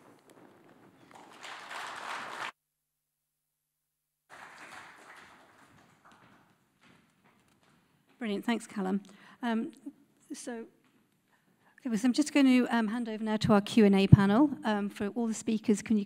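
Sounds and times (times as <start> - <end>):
audience applauding: 0.0 - 2.6, 4.3 - 6.6.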